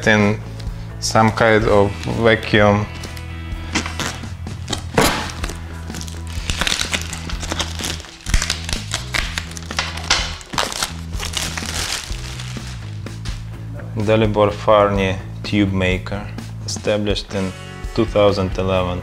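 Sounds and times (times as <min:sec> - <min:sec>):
background music with low bass: 0:00.0 - 0:19.0
plastic shrink-wrap crinkling: 0:03.7 - 0:13.0.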